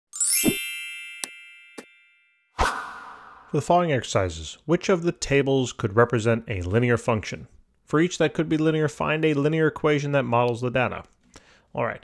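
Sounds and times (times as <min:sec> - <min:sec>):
bright chime with low thud: 0:00.2 - 0:03.6.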